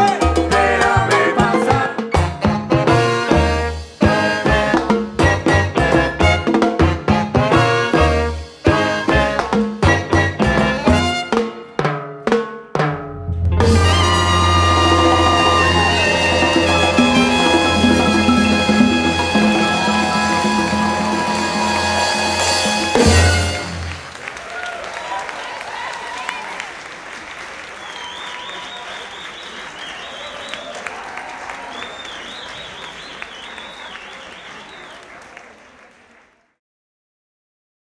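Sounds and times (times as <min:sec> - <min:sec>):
live salsa band: 0:00.0 - 0:24.1
audience applause and cheering: 0:13.6 - 0:36.6.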